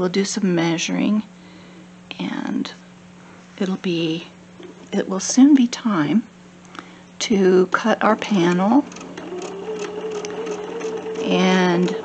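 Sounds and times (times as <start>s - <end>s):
sewing machine stitching: 8.1s - 12.0s.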